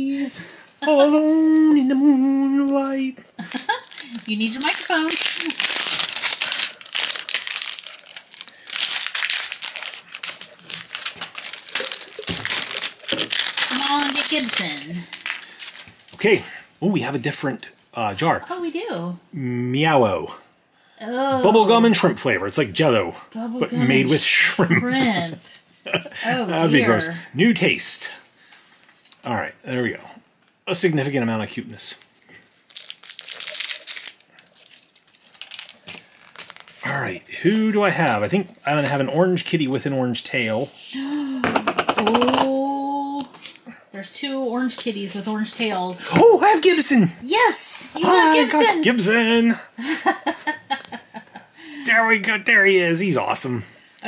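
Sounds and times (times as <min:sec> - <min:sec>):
plastic shrink-wrap crackling: 0:03.5 - 0:16.2, 0:32.4 - 0:37.1
foil strip peeling: 0:03.6 - 0:16.1, 0:32.6 - 0:36.9
plastic toy can clicking and crinkling: 0:03.7 - 0:15.9, 0:32.7 - 0:36.5
rustling: 0:32.2 - 0:37.0.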